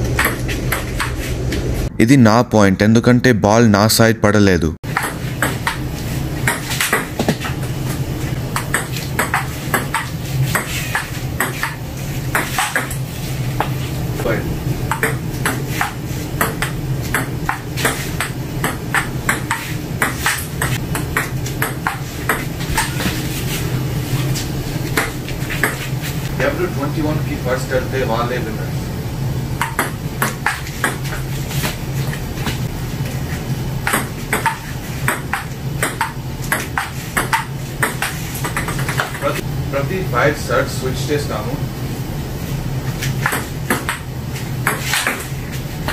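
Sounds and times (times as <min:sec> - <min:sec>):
steady low hum: 0:00.0 - 0:45.9
ping pong ball hitting paddles: 0:00.2 - 0:01.1, 0:04.9 - 0:05.8, 0:06.4 - 0:07.5, 0:08.5 - 0:13.0, 0:14.9 - 0:23.1, 0:25.0 - 0:25.9, 0:29.6 - 0:31.2, 0:33.8 - 0:39.4, 0:43.2 - 0:45.3.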